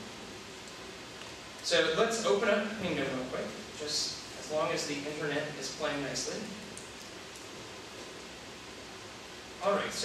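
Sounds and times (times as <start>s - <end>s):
room noise hiss in large hall: 0.0s - 10.0s.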